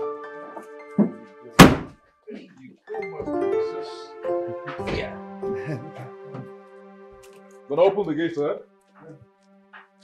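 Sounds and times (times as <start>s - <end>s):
background music: 0.0s - 10.0s
car boot lid slamming shut: 1.0s - 2.0s.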